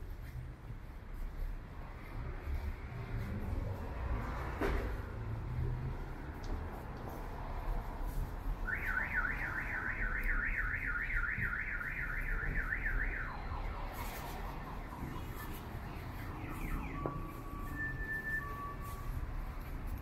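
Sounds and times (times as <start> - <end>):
low street rumble: 0.0 - 20.0
vehicle alarm siren warbling: 8.7 - 19.3.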